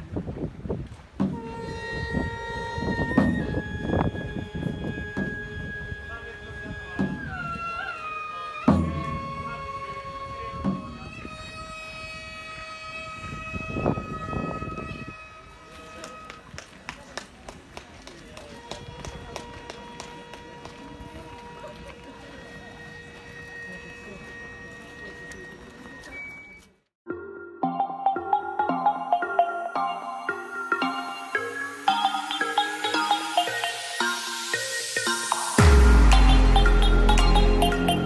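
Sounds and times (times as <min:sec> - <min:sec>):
wavering wind instrument tones: 0:01.3 - 0:16.4, 0:27.6 - 0:38.0
hanging drum strikes: 0:35.0 - 0:38.0.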